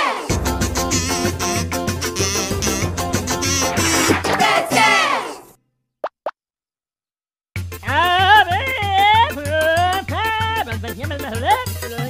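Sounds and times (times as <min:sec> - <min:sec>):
music cue: 0:00.3 - 0:05.1
cartoon plop sound effects: 0:06.0 - 0:06.4.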